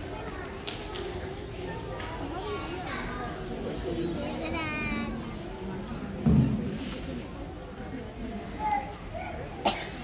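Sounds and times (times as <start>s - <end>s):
murmur of voices in a hall: 0.0s - 10.0s
person coughing: 9.6s - 10.0s.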